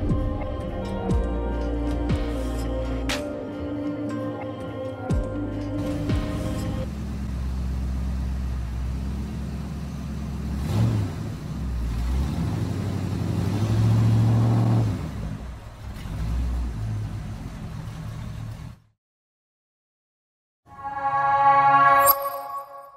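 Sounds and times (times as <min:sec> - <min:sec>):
car engine revving: 0:06.8 - 0:18.8.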